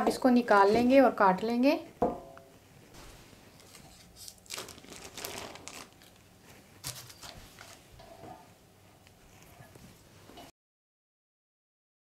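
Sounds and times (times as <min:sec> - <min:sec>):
baking paper crinkling: 0:03.0 - 0:07.9.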